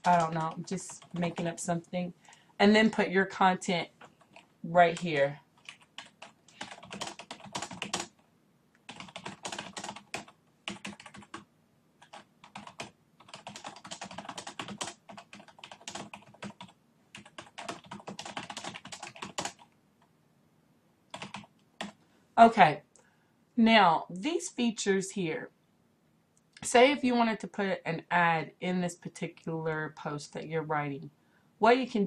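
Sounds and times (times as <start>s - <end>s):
computer keyboard typing: 0.0s - 1.5s, 4.1s - 8.2s, 8.8s - 19.8s, 21.1s - 22.0s.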